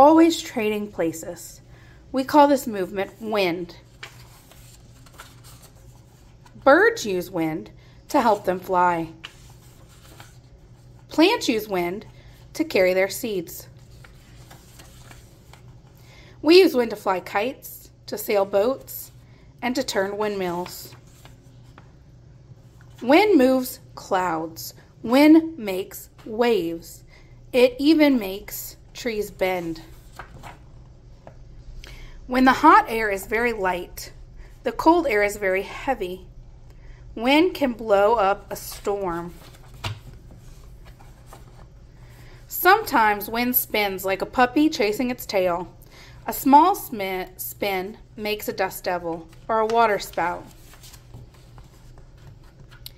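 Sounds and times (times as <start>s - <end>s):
low steady hum: 0.0s - 52.9s
book page turning: 3.8s - 6.6s, 9.0s - 11.1s, 13.7s - 15.9s, 20.6s - 22.0s, 29.9s - 30.6s, 38.6s - 41.7s, 49.1s - 52.9s.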